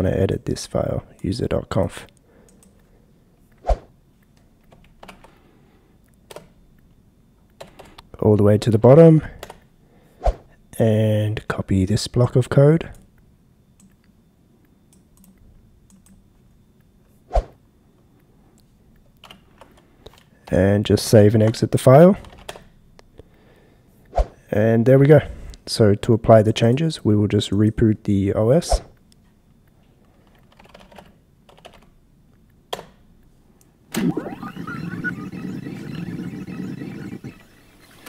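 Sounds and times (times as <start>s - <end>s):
computer keyboard key presses: 30.3s - 31.9s.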